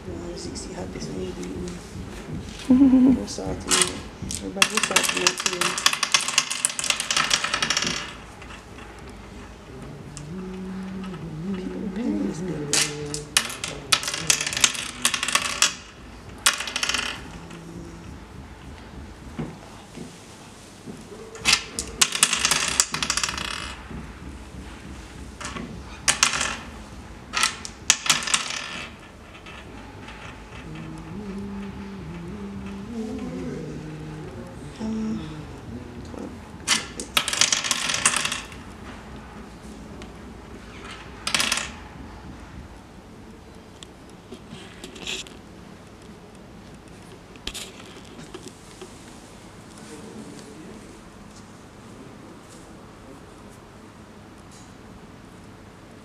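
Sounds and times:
counters clicking on wooden board: 0:20.9 - 0:33.4, 0:34.2 - 0:49.0.

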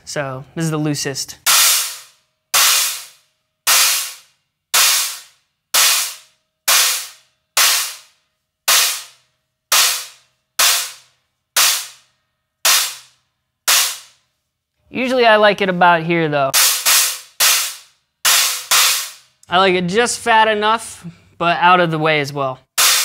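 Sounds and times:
stacked cymbals struck with drumstick: 0:01.4 - 0:12.0, 0:12.6 - 0:13.1, 0:13.7 - 0:14.1, 0:16.5 - 0:19.2, 0:22.8 - 0:23.0.

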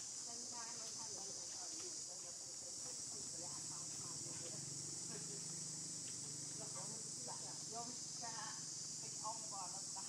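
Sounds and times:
insects buzzing: 0:00.0 - 0:10.0.

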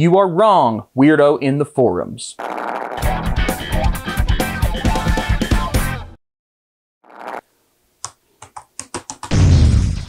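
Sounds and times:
laptop keyboard typing: 0:08.0 - 0:09.3.

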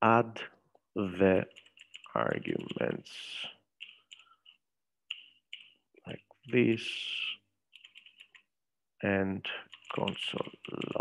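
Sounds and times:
keyboard typing: 0:01.5 - 0:03.0, 0:03.7 - 0:06.7, 0:07.7 - 0:08.5, 0:09.6 - 0:11.0.

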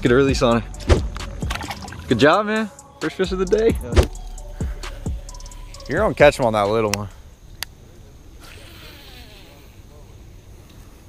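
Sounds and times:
outdoor background hiss: 0:00.0 - 0:11.0
faint distant voices: 0:02.3 - 0:11.0.

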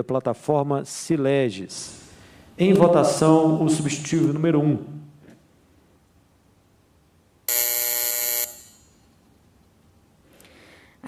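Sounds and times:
electronic voting buzzer: 0:07.5 - 0:09.1.

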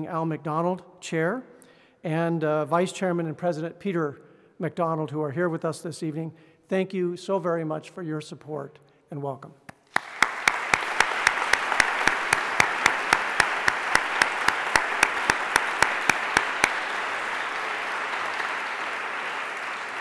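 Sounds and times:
sharp close claps: 0:09.7 - 0:20.0
audience applauding: 0:09.8 - 0:20.0.

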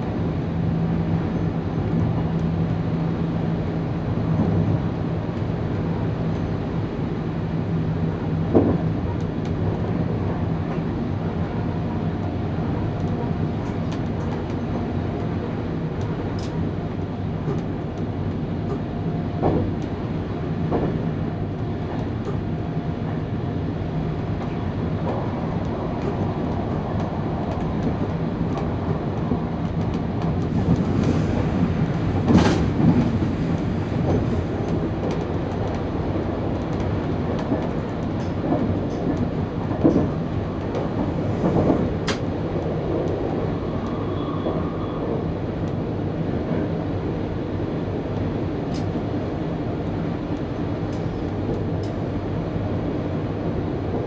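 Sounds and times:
train wheels rumbling on rail: 0:00.0 - 0:54.0
sharp clicks and knocks: 0:36.6 - 0:42.3.

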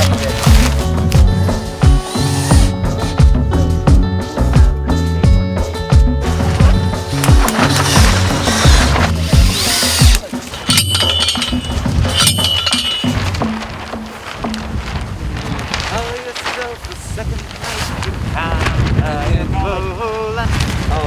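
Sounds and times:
wind: 0:00.0 - 0:21.0
post driver striking steel post: 0:09.9 - 0:13.2.

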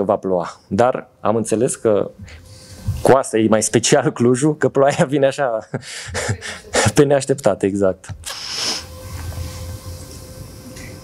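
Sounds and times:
low hum: 0:08.2 - 0:11.0.

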